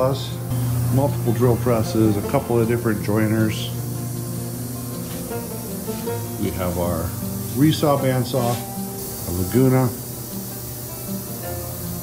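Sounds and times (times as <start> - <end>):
soft background music: 0.0 - 12.0
steady hiss: 0.0 - 12.0.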